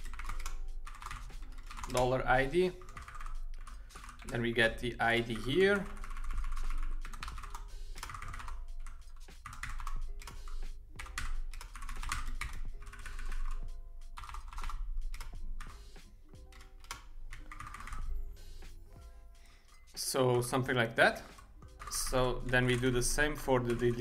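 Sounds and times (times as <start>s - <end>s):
typing on computer keyboard: 0.0s - 4.4s, 5.2s - 15.8s, 16.4s - 18.2s
quiet background music: 0.0s - 24.0s.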